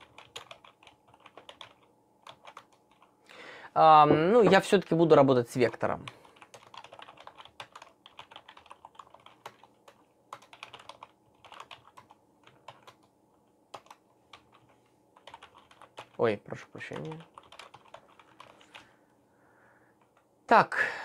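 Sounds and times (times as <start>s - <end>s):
typing on computer keyboard: 0.0s - 3.1s, 5.7s - 13.1s, 13.7s - 16.2s, 16.8s - 18.8s.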